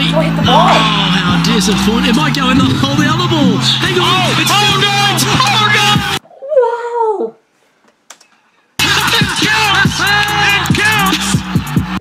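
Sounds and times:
music: 0:00.0 - 0:06.2, 0:08.8 - 0:12.0
people talking: 0:00.0 - 0:07.4, 0:08.8 - 0:11.2.

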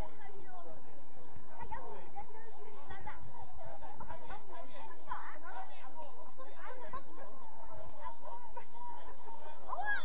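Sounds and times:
spectators chattering and calling out: 0:00.0 - 0:10.0.

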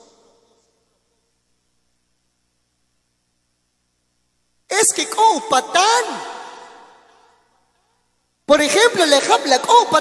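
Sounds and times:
man speaking: 0:04.7 - 0:07.0, 0:08.5 - 0:10.0
breathy echoing voice tail: 0:04.7 - 0:10.0.

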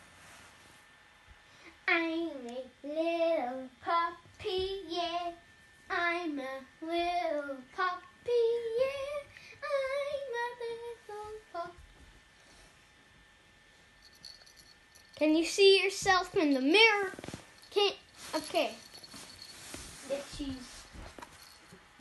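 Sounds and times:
child singing: 0:01.9 - 0:11.8.

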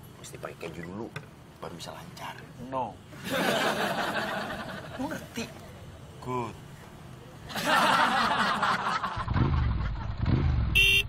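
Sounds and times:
scooter engine revving: 0:09.2 - 0:11.0
short horn beep: 0:10.8 - 0:11.0.

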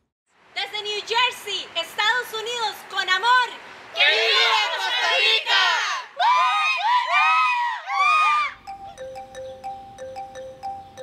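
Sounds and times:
people shouting and whooping: 0:05.8 - 0:08.6.

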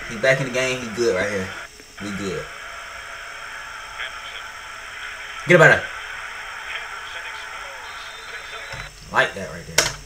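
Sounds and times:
stadium crowd noise: 0:00.0 - 0:08.9.

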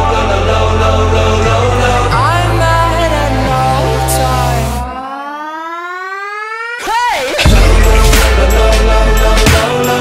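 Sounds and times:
buzzy synth tone gliding upward: 0:02.4 - 0:06.9.

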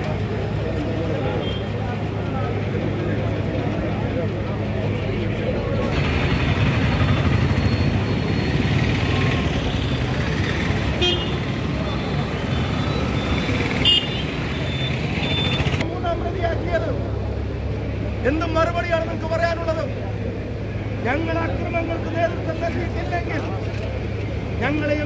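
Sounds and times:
crowd hubbub: 0:00.0 - 0:25.0
street traffic noise: 0:00.0 - 0:25.0.

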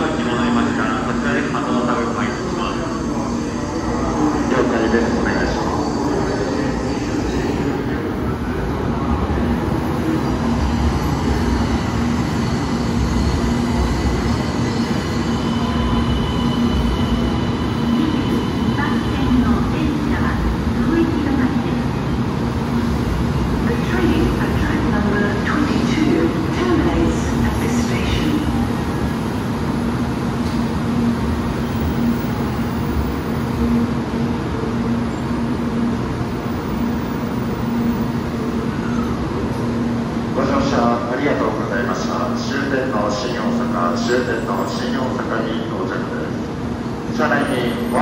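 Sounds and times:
faint high squeal: 0:14.7 - 0:19.0.

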